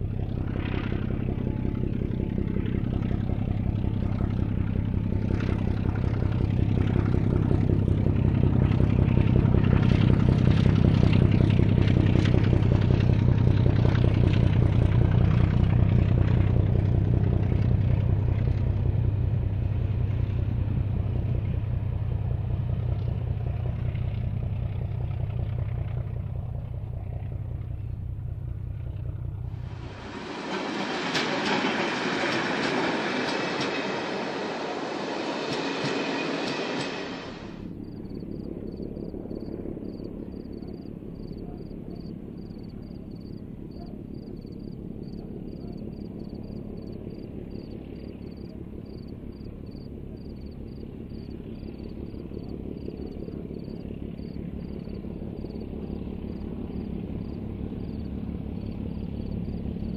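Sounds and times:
train wheels rushing on rails: 0.0 - 26.9, 29.2 - 59.9
diesel locomotive engine drone: 0.0 - 59.9.

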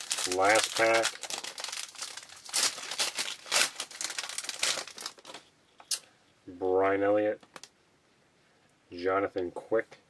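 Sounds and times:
wrapper tearing and crinkling: 0.0 - 5.5.

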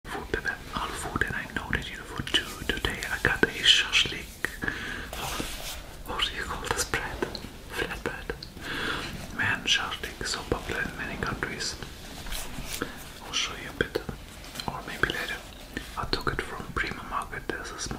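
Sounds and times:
man whispering: 0.1 - 17.9.

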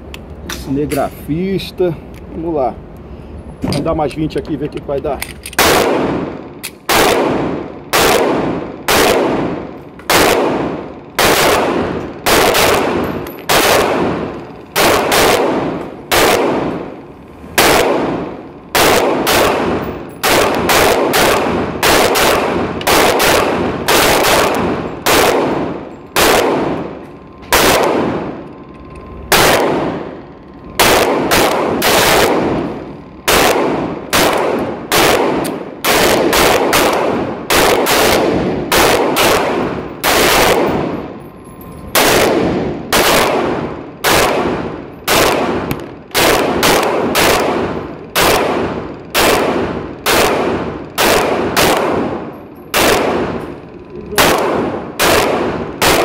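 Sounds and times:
pistol shots echoing: 5.2 - 28.5, 29.3 - 41.2, 41.9 - 56.0.

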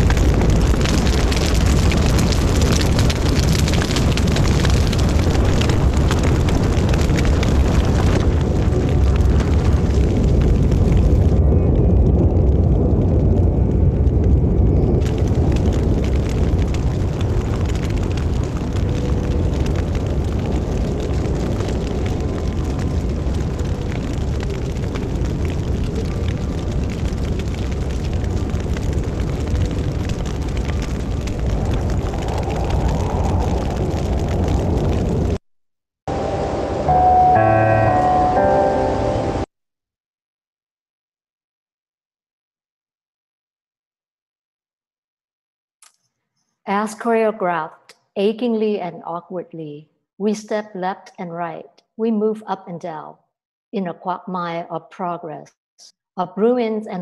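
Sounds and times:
low rumbling roar of fire: 0.0 - 35.4, 36.1 - 38.8
music with held notes: 36.8 - 39.4.

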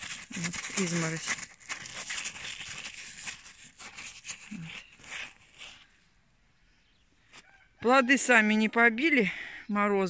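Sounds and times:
frosty leaf crackling: 0.0 - 6.0.

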